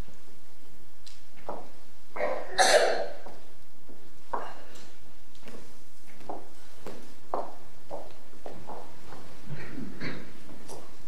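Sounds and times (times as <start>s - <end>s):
person coughing: 2.2s - 3.2s, 9.5s - 10.4s.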